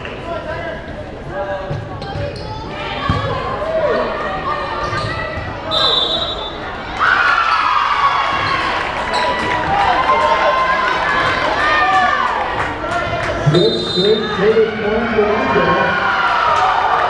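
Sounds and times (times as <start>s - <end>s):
crowd cheering and shouting: 2.5s - 17.0s
shrill referee's whistle: 5.7s - 6.6s, 13.5s - 14.4s.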